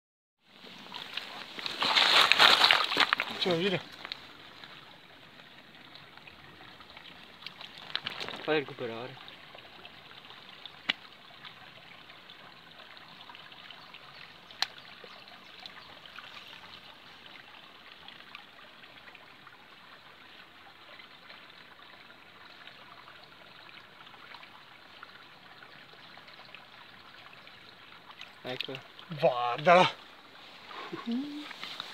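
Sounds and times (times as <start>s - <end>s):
river water flowing over stones: 0.4s - 31.9s.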